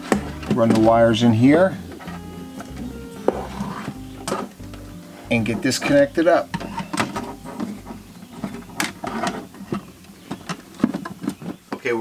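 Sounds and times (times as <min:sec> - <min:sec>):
cables rustling: 0:00.0 - 0:11.9.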